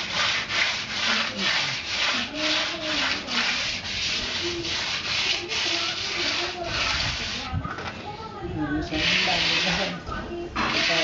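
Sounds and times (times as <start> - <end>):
hand tool rasping on concrete: 0.0 - 7.5, 8.9 - 10.0, 10.6 - 11.0.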